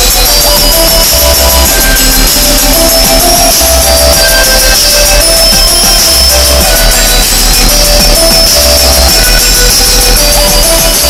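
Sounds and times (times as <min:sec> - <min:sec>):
deep bass notes: 0:00.0 - 0:11.0
loud electronic dance music: 0:00.0 - 0:11.0.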